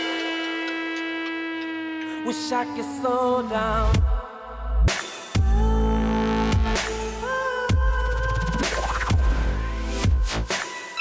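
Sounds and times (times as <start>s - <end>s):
sustained synth note: 0.0s - 4.8s.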